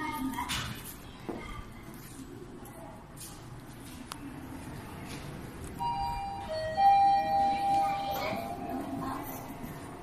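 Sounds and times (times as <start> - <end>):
elevator arrival chime: 5.8 - 9.4.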